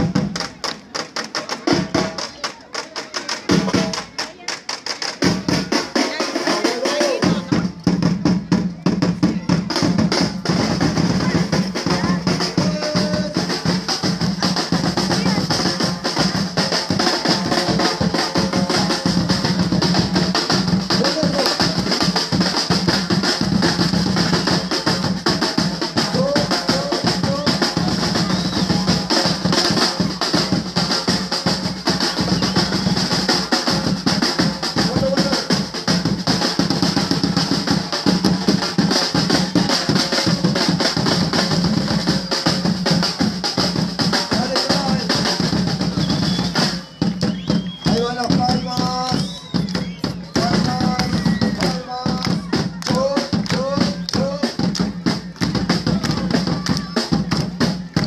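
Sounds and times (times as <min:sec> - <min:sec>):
samba percussion drumming: 0:00.0 - 0:58.0.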